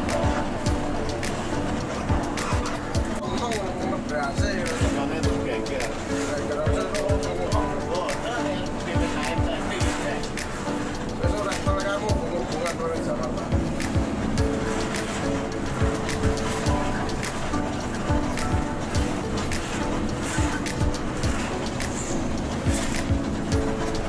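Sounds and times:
song with beat and singing: 0.0 - 3.8, 13.4 - 24.0.

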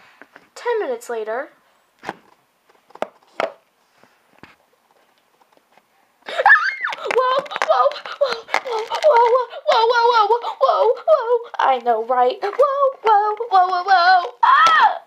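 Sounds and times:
plastic toy figures clicking: 6.9 - 9.9.

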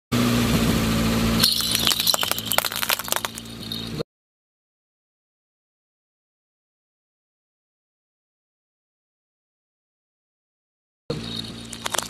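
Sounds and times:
low hum: 0.2 - 4.0, 11.1 - 12.0.

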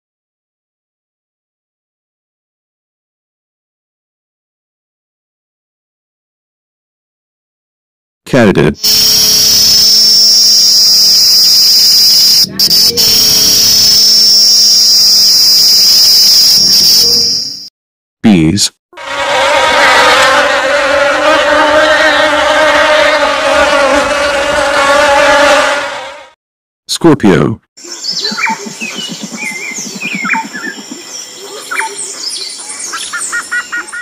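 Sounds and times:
cicadas buzzing: 8.8 - 17.7, 27.8 - 33.6
honeybees humming: 19.0 - 26.0.

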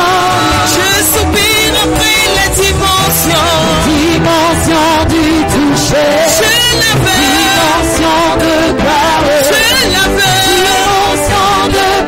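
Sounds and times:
person singing a melody: 0.0 - 12.0
held accompaniment notes: 1.1 - 12.0.

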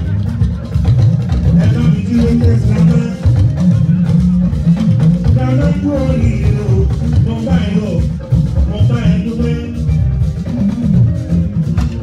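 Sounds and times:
bass guitar line: 0.0 - 12.0
live band music: 0.0 - 12.0.

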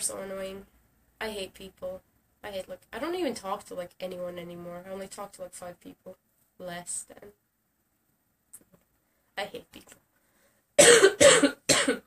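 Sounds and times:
woman coughing: 10.8 - 12.0.

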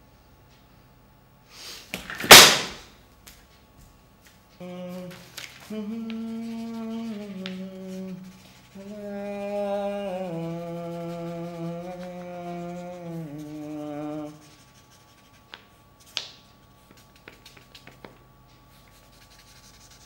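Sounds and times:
person humming a tune: 4.6 - 14.6.

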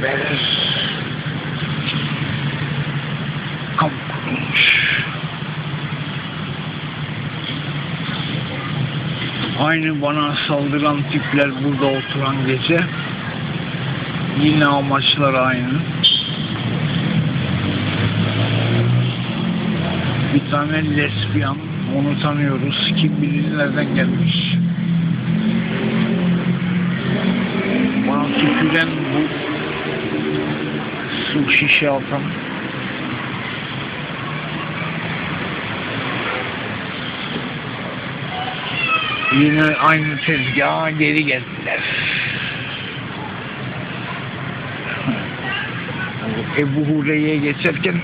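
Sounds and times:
car engine running: 0.0 - 18.4
road noise: 0.0 - 48.0
traffic hiss: 0.0 - 48.0.

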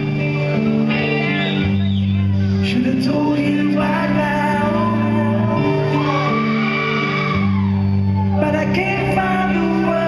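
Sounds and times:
electric bass and guitar chords: 0.0 - 10.0
man singing a long note: 2.6 - 6.7, 8.3 - 10.0.

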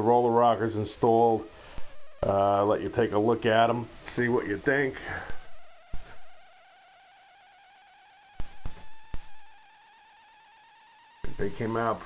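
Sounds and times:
faint wavering whine: 0.0 - 12.0.

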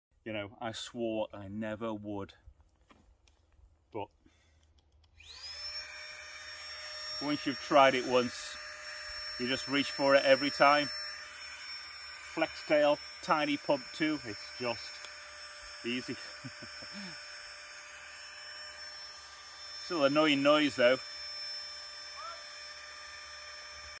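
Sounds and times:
air pump motor whirring: 5.0 - 24.0.

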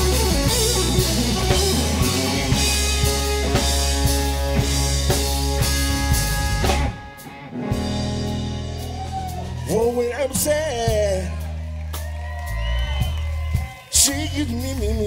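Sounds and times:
electric guitar playing lead: 0.0 - 12.0
bass: 0.0 - 15.0
drum kit steady beat: 0.0 - 15.0.

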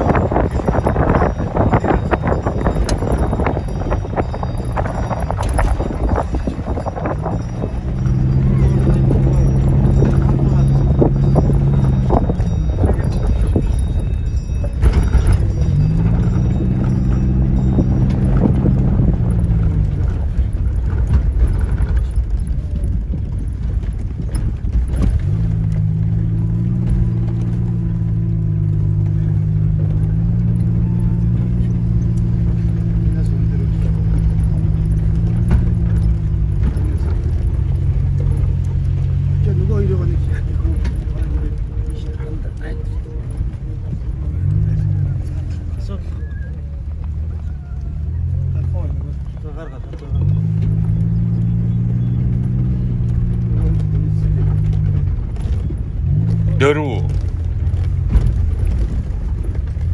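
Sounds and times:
vehicle engine hum from cabin: 0.0 - 59.9.

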